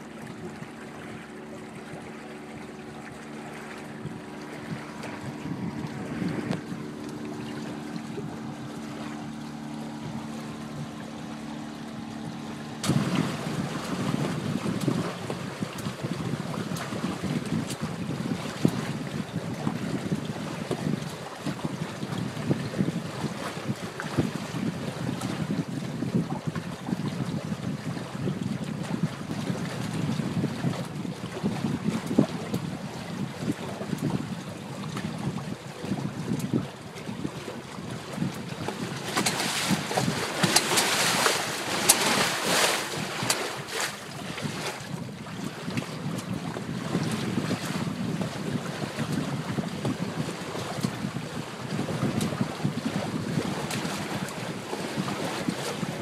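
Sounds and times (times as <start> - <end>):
water rushing along hulls: 0.0 - 56.0
wind buffeting microphone: 0.0 - 56.0.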